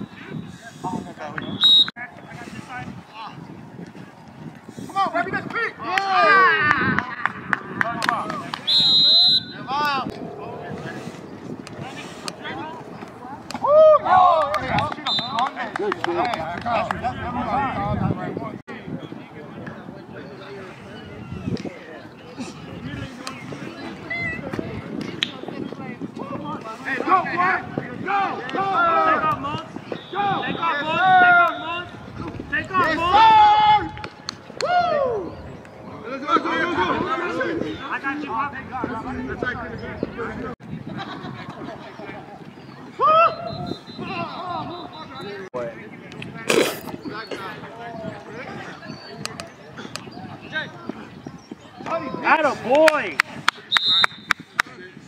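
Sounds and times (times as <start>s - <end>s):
overlapping voices chatter: 0.0s - 55.0s
people shouting and yelling: 4.0s - 40.5s, 41.4s - 45.7s, 47.1s - 55.0s.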